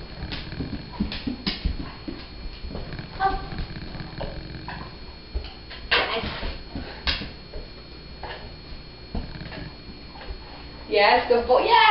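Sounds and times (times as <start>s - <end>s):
dog paws on wooden board: 0.2s - 8.4s.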